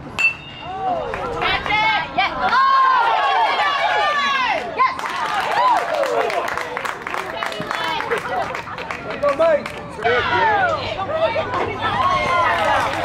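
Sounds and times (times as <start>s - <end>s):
metal bat hitting ball: 0.2s - 0.7s
spectators shouting and cheering: 0.5s - 13.0s.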